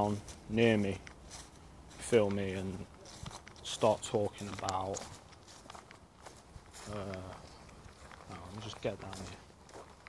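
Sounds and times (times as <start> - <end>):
man's voice: 0.0 - 1.1, 1.9 - 2.9, 3.6 - 5.1, 8.3 - 9.4
footsteps on leaves and grass: 0.0 - 10.0.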